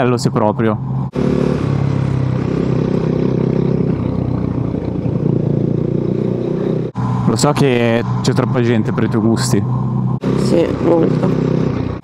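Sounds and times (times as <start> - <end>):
wind and road noise: 0.0 - 12.0
motorcycle engine running: 0.7 - 12.0.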